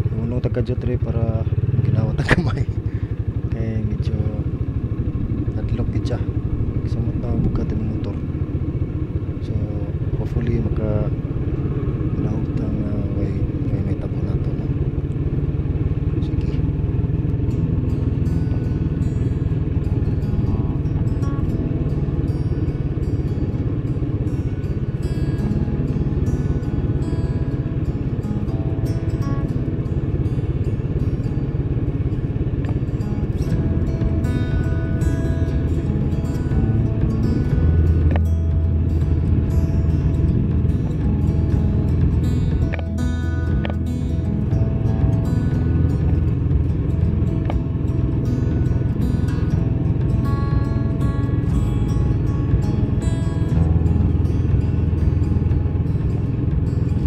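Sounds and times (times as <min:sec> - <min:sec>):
motorcycle engine rumble: 0:00.0 - 0:57.0
music playing: 0:16.2 - 0:57.0.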